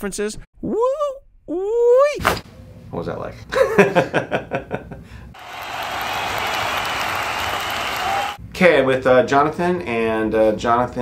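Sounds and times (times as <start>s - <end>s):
applause-like hiss: 5.4s - 8.4s.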